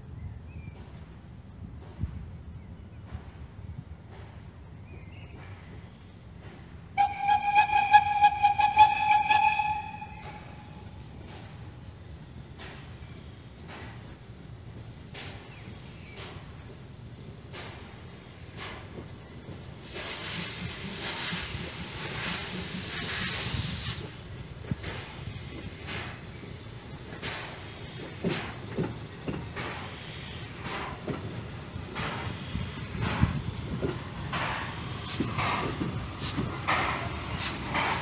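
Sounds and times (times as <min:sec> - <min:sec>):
steam engine exhaust beats: 0:05.4 - 0:38.0
steam locomotive whistle: 0:07.0 - 0:10.9
hiss of steam: 0:12.6 - 0:38.0.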